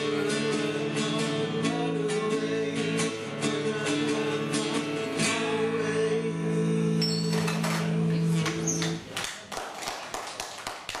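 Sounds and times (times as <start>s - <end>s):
audience clapping: 8.4s - 11.0s.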